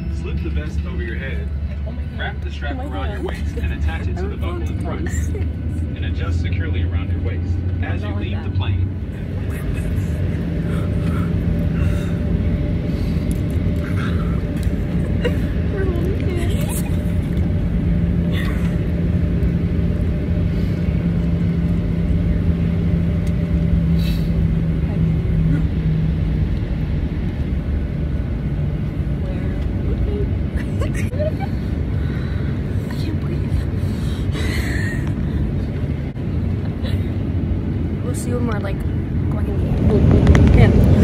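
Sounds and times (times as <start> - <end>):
airliner cabin engine rumble: 0.0 - 41.0.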